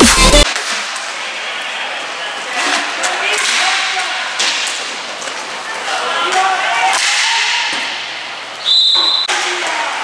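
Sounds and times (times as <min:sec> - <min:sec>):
referee's whistle blast: 0:08.6 - 0:09.3.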